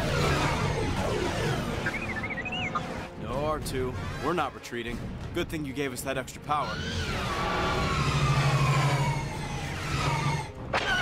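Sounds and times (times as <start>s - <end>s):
space battle sound effects: 0.0s - 3.2s
electronic warbling whistles: 1.7s - 3.1s.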